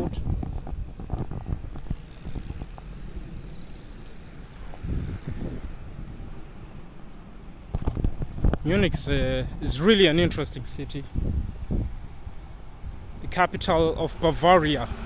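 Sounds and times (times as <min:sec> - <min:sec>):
wind on microphone: 0:00.0 - 0:06.8, 0:07.7 - 0:14.0
distant road traffic: 0:00.0 - 0:15.0.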